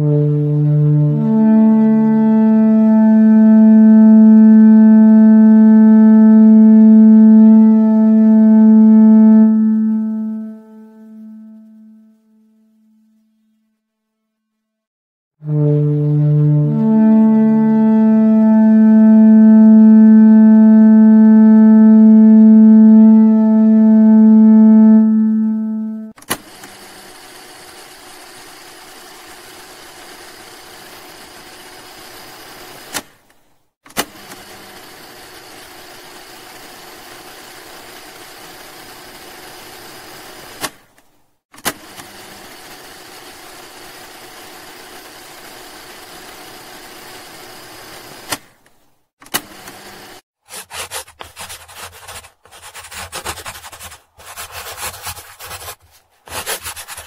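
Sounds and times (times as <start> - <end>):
loud low drone tone: 0.0 - 12.4, 15.4 - 26.1
marker scratching on paper: 50.4 - 57.0.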